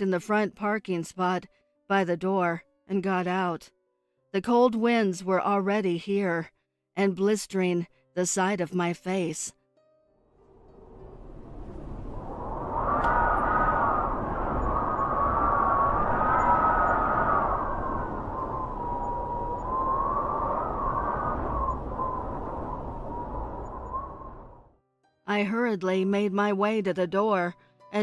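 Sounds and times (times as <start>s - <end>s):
howling wind: 10.3s - 24.7s.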